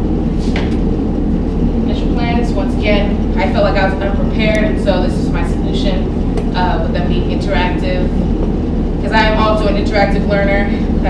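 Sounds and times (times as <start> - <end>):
low background rumble: 0.0 - 11.0
woman talking: 1.8 - 8.2, 9.0 - 11.0.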